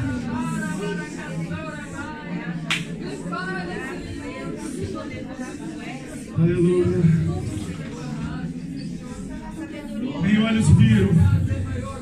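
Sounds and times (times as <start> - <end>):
people speaking quietly: 0.0 - 12.0.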